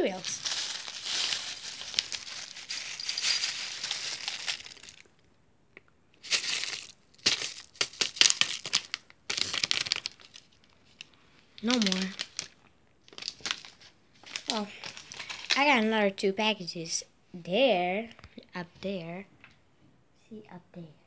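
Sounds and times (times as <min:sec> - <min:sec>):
plastic bag crinkling: 0:00.0 - 0:05.2, 0:06.2 - 0:15.7
cereal pouring into bowl: 0:00.1 - 0:05.1.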